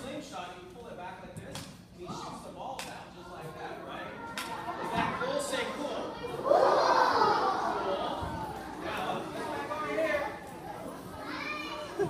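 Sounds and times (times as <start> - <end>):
speech echoing in hall: 0.0 - 12.0
children's voices: 4.1 - 12.0.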